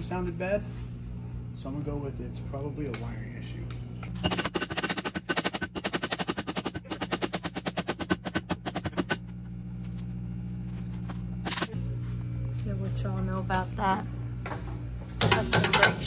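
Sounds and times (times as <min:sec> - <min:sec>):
impact wrench rattling: 0:04.2 - 0:09.2.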